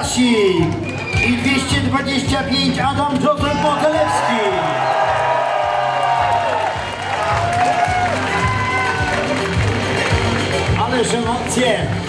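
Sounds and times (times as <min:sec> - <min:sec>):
upbeat music with steady beat: 0:00.0 - 0:12.0
audience cheering and clapping: 0:03.3 - 0:12.0.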